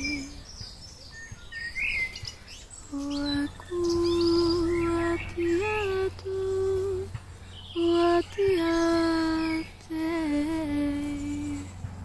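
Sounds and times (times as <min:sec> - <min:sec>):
woman's wordless vocalising: 0:02.9 - 0:07.2.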